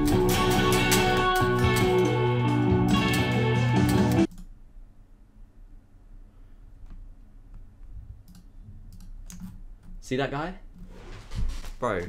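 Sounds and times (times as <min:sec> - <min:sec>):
computer mouse clicks: 0:04.3 - 0:04.5, 0:06.8 - 0:10.0
low steady hum: 0:04.3 - 0:10.9.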